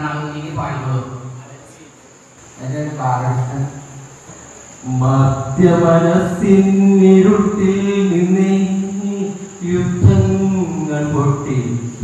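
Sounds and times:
man chanting into microphone: 0.0 - 1.9, 4.8 - 12.0.

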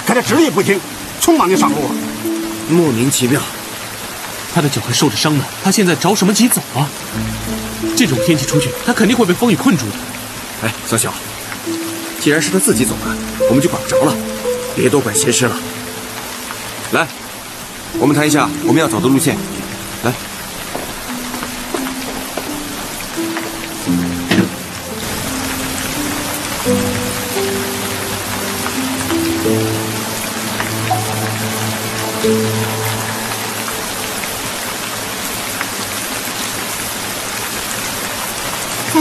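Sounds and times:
heavy rain falling: 0.0 - 39.0
slow instrumental melody: 0.3 - 4.4, 7.2 - 36.4.

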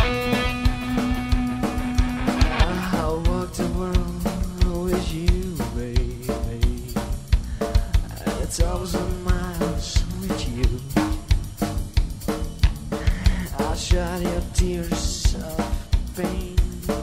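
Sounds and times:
drum kit beat: 0.0 - 17.0
rock band playing instrumental: 0.0 - 17.0.

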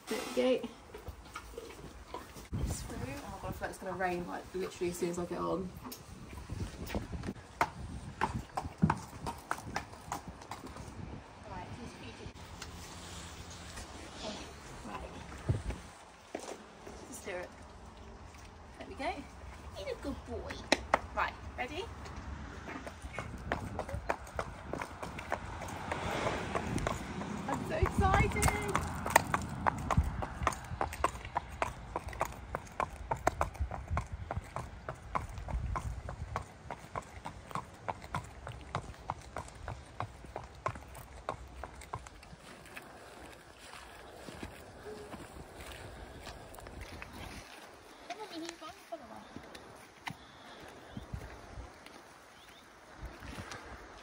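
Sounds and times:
hooves clip-clopping on concrete: 0.9 - 11.1, 19.8 - 52.6.

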